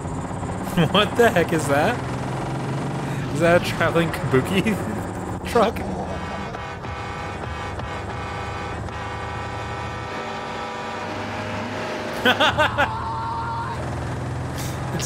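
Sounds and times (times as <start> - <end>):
truck engine running: 0.0 - 15.0
man speaking: 0.7 - 2.0, 3.2 - 6.6.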